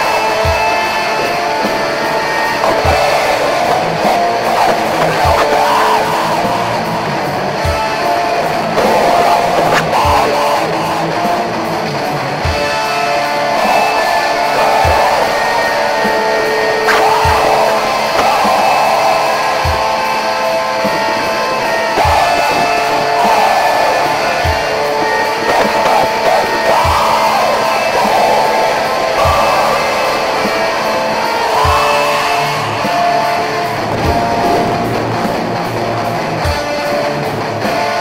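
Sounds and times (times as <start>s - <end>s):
distorted guitars: 0.0s - 38.0s
slow bass drum beat: 2.6s - 12.6s, 16.9s - 28.2s, 31.6s - 31.9s, 33.6s - 36.7s.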